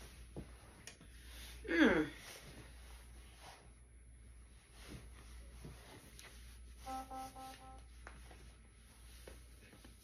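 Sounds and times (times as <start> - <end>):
clothing fabric rustling: 0.0 - 1.6, 2.2 - 10.0.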